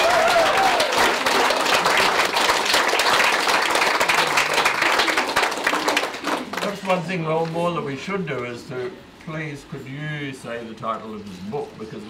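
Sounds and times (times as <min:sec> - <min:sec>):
audience applauding: 0:00.0 - 0:07.1.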